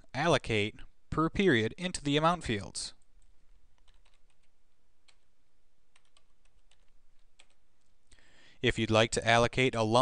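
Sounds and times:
computer keyboard typing: 3.1 - 5.3, 5.9 - 8.0.

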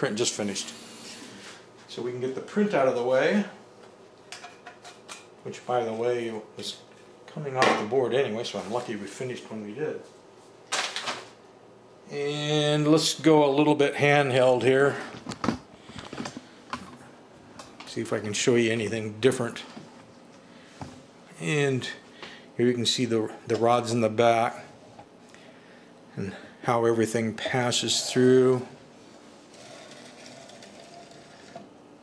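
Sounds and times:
small motor whirring: 29.5 - 31.7.

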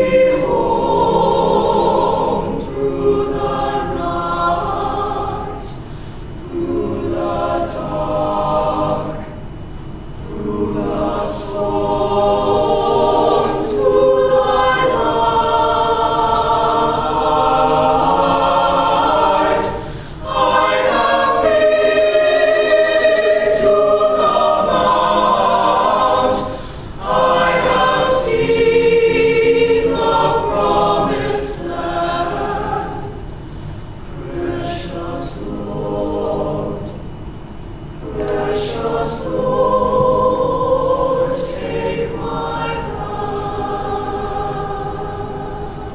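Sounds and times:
mixed choir singing: 0.0 - 37.3, 38.0 - 45.9.

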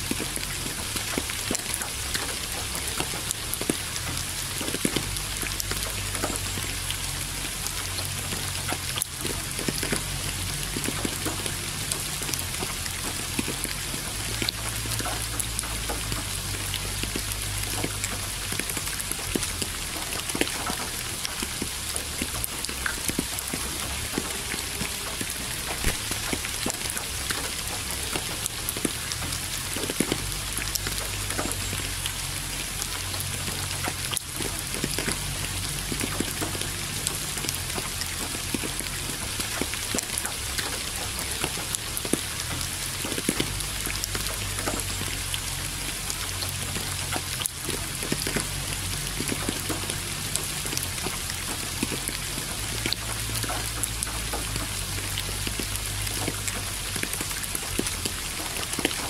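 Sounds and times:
raindrops ticking on hard surface: 0.0 - 59.0.

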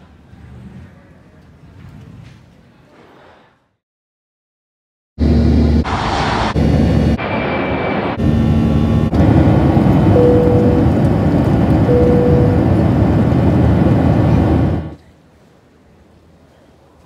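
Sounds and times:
aircraft cabin engine roar: 5.2 - 15.0
brief steady tones: 10.0 - 11.1, 11.8 - 12.9.

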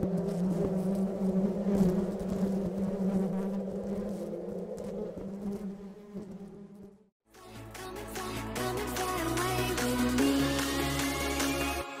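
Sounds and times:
bee buzzing: 0.0 - 7.1.

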